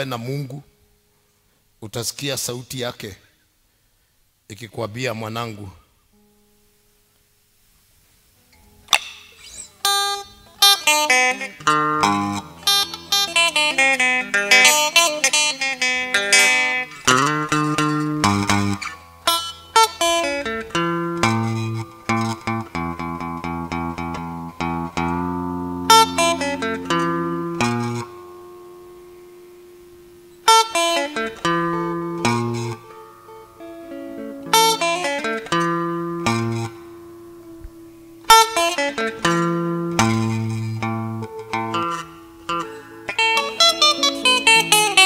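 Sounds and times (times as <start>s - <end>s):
plucked electric guitar note: 16.2s - 45.0s.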